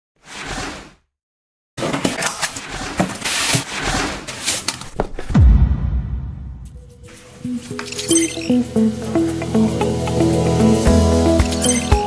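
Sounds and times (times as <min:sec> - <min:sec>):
deep falling boom: 0:05.4 - 0:07.1
whoosh: 0:05.4 - 0:07.5.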